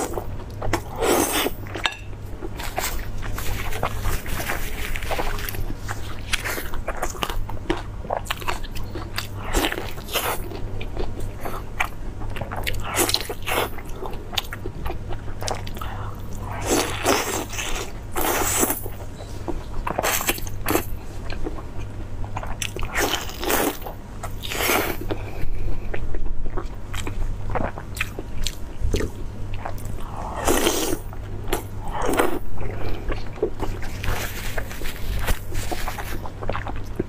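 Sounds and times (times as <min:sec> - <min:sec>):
chewing and mouth smacks: 0:25.8 - 0:32.4, 0:33.0 - 0:37.0.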